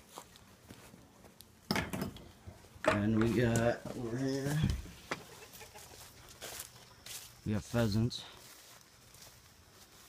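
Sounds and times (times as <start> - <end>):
footsteps on wood shavings: 0.0 - 1.6, 2.4 - 10.0.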